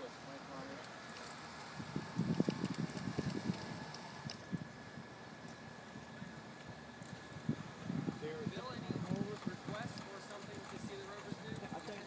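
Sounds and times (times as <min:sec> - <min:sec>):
wind buffeting microphone: 0:01.5 - 0:12.0.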